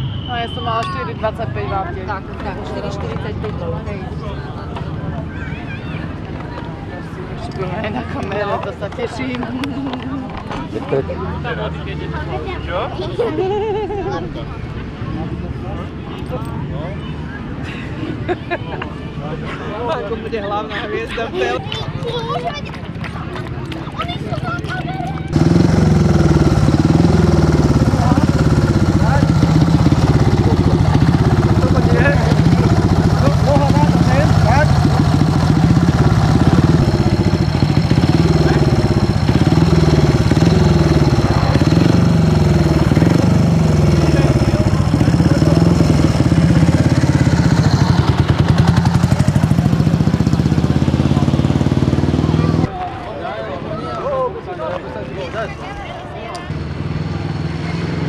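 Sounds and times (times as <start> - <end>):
motorcycle engine revving: 25.3 - 52.7, 56.5 - 58.0.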